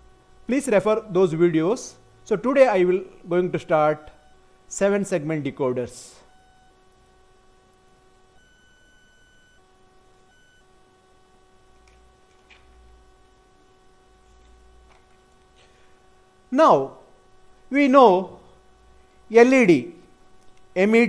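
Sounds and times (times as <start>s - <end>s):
faint electrical hum and whine: 0.0s - 21.0s.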